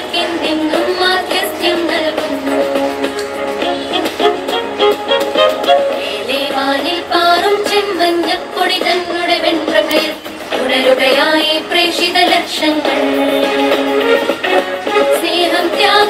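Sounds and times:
anthem sung with instruments: 0.0s - 16.0s.

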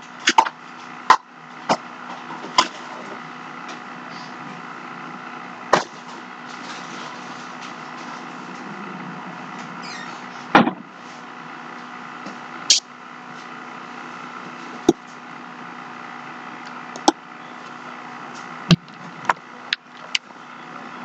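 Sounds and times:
room hum: 0.0s - 21.0s.

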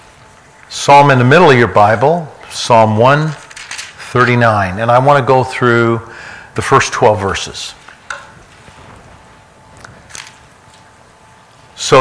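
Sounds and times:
faint room hum and hiss: 0.0s - 12.0s.

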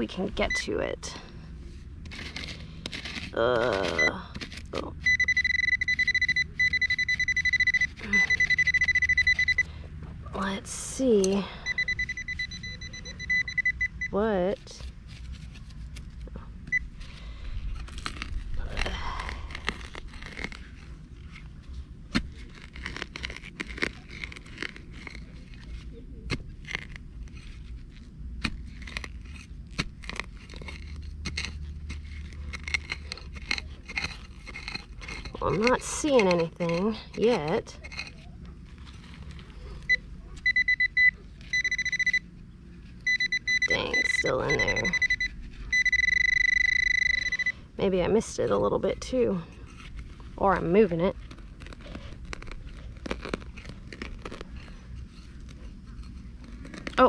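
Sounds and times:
knife scraping into dry soil: 1.6s - 5.1s, 14.3s - 40.0s, 48.0s - 57.0s
metal detector beeping rapidly: 5.0s - 9.7s, 11.6s - 14.2s, 39.9s - 42.2s, 43.0s - 47.6s.

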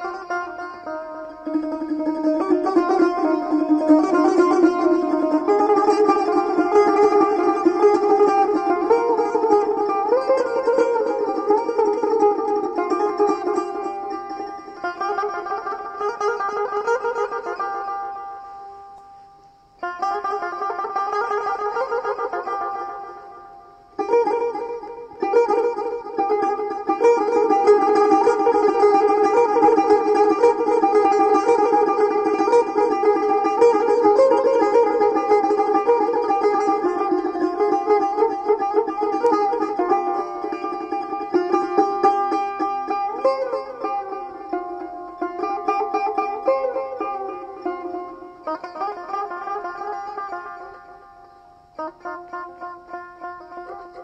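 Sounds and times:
plucked lute melody: 0.0s - 54.0s.

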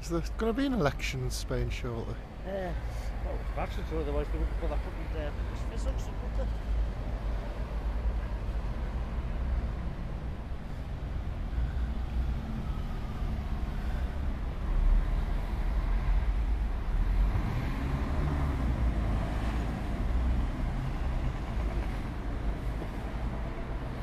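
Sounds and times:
road traffic rumble: 0.0s - 24.0s.

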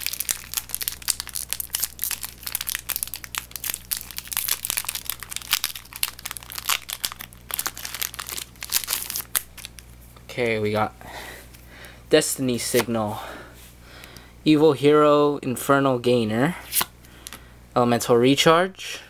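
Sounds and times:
foil wrapper crinkling: 0.0s - 9.9s.

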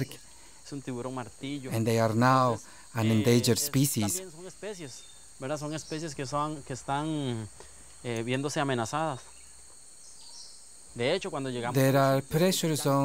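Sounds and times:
man talking: 0.0s - 9.2s, 11.0s - 13.0s
crickets chirping: 0.0s - 13.0s.

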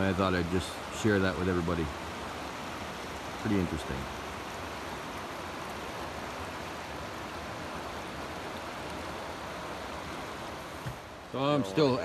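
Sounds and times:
river flowing over rocks: 0.0s - 12.0s.

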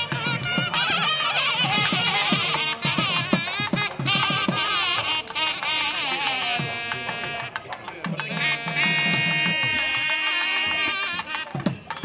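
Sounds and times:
drum strokes: 0.0s - 12.0s
reedy wind instrument: 0.0s - 12.0s.

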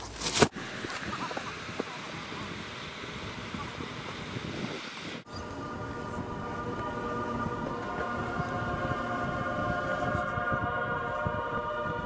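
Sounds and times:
wind noise on microphone: 0.5s - 12.0s
held chord: 5.3s - 12.0s.

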